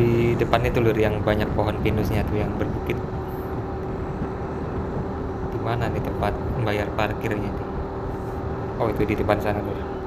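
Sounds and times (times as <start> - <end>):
wind noise: 0.0 - 9.8.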